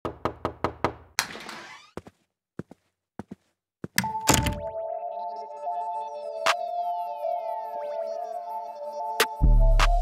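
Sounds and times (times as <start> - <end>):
knocking on wooden door: 0.0 - 1.1.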